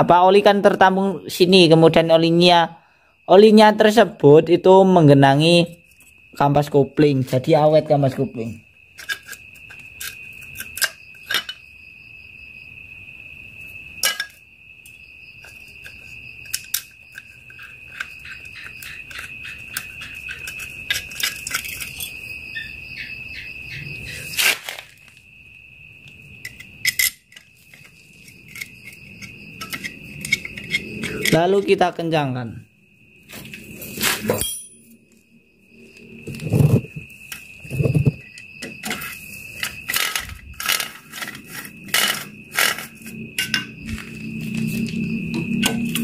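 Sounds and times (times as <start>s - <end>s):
metal tools clinking: 14.0s - 14.4s, 15.9s - 22.2s, 26.4s - 27.9s, 34.0s - 35.0s.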